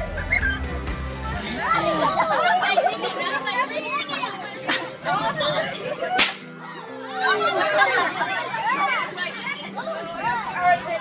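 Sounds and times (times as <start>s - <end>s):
party guests chattering: 0.0s - 11.0s.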